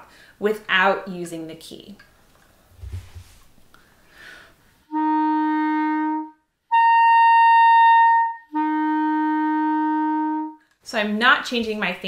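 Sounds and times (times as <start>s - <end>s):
clarinet playing held notes: 4.9s - 10.6s.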